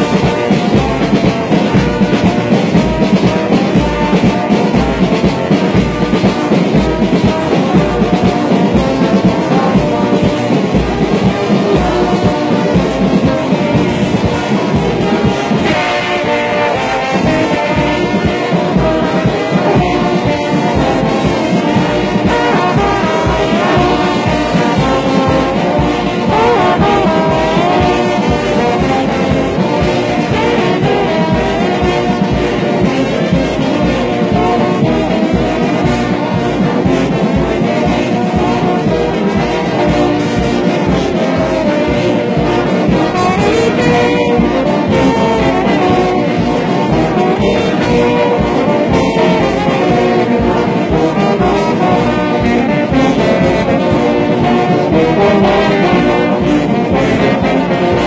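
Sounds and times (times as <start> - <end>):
brass band playing: 0.0 - 58.0.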